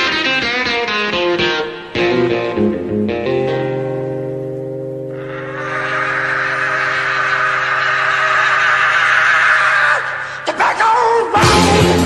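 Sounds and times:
electric guitar chord ringing: 0.0 - 8.6.

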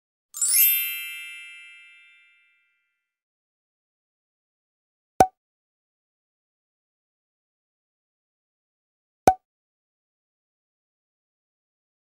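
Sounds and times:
bright sparkly chime: 0.4 - 2.8.

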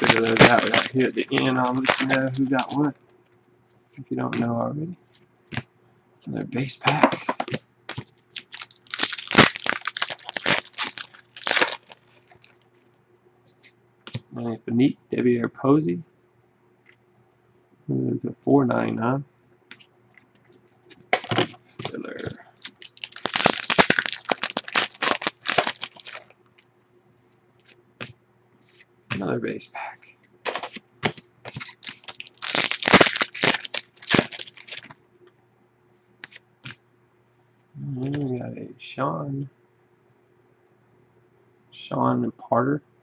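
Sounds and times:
foil wrapper tearing and crinkling: 0.0 - 2.9, 7.9 - 12.6, 21.2 - 26.4, 30.5 - 35.0.

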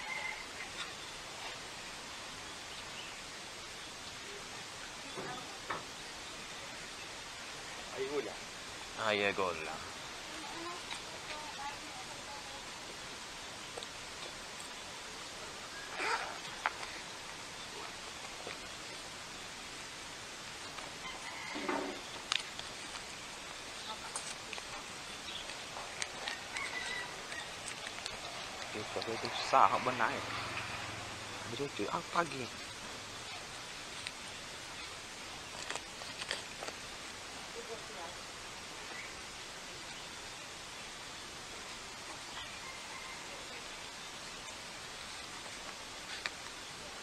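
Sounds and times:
background hiss: 0.0 - 47.0
food stall background noise: 20.7 - 37.3.

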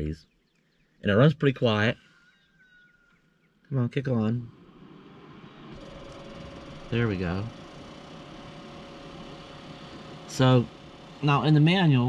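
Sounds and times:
fridge compressor humming: 4.6 - 12.0.

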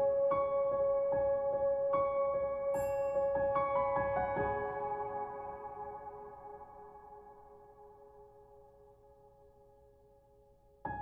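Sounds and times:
gentle solo piano: 0.0 - 9.2, 10.7 - 11.0.

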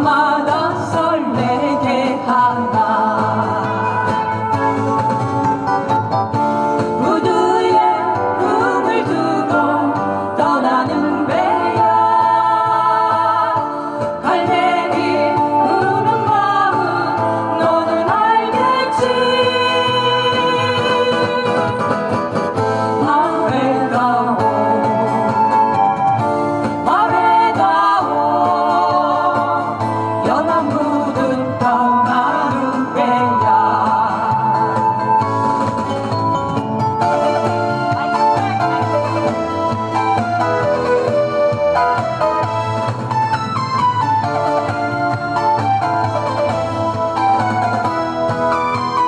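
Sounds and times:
woman singing: 0.0 - 4.1, 7.0 - 22.1, 23.0 - 25.8, 26.8 - 35.2
acoustic guitar: 0.0 - 49.0
backing music: 0.0 - 49.0.

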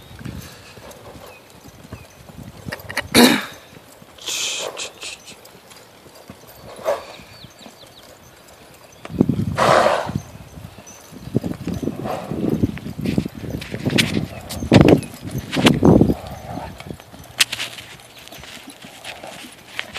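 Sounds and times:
horse hoofbeats on sand: 0.0 - 19.9.

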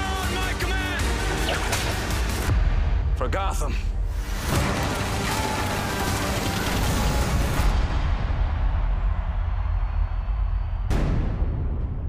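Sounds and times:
trailer music: 0.0 - 12.0.

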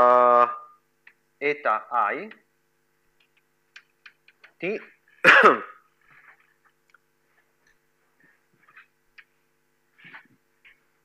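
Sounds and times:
man coughing: 5.2 - 5.9.

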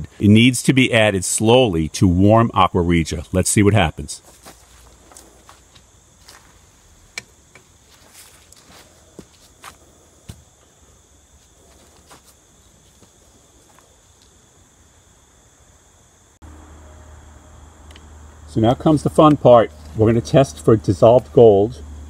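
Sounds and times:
high insect drone: 0.0 - 22.0
low hum: 16.4 - 22.0.

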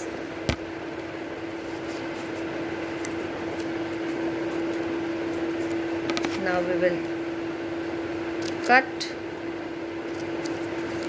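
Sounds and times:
fan humming with pitched tone: 0.0 - 11.0.

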